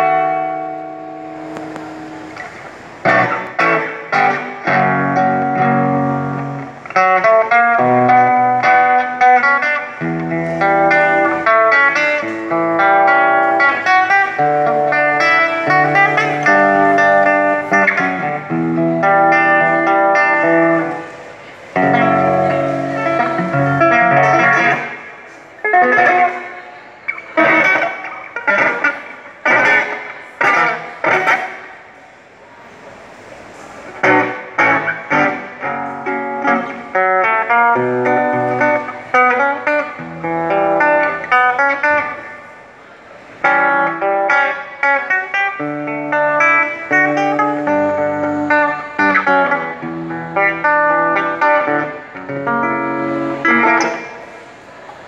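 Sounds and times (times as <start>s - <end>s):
acoustic guitar: 0.0s - 55.0s.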